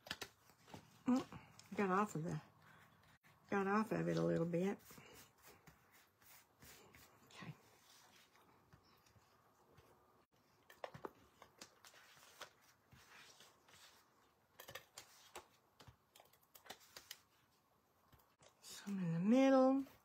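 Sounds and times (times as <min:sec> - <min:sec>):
paper rustling: 0:10.8 - 0:14.1.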